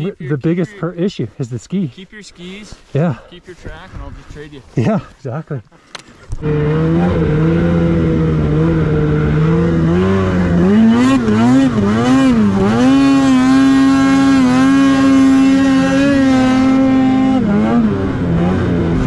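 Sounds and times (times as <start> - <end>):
snowmobile engine revving: 6.4 - 19.0.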